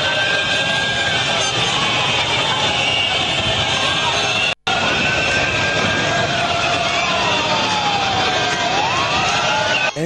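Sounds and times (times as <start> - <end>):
street crowd celebrating: 0.0 - 10.0.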